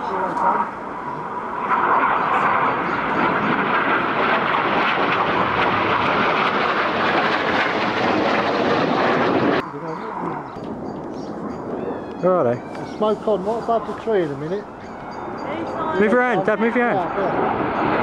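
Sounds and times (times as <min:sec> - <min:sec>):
jet flying low overhead: 0:00.0 - 0:18.0.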